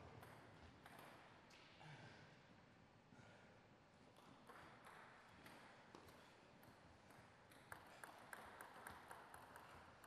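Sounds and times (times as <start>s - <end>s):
table tennis ball bouncing: 0.0s - 1.4s, 4.2s - 10.0s.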